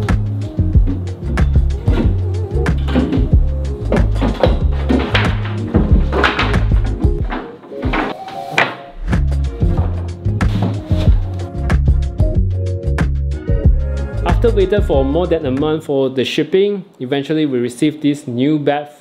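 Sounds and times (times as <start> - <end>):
deep repeating bass line: 0.0 - 7.2, 11.1 - 15.8.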